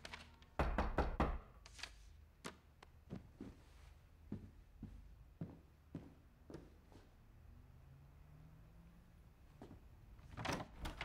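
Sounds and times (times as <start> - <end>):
knocking on wooden door: 0.6 - 1.4.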